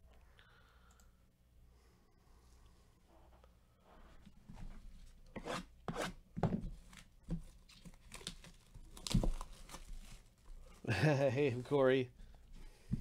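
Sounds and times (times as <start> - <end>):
plastic wrap tearing and crinkling: 7.6 - 10.4.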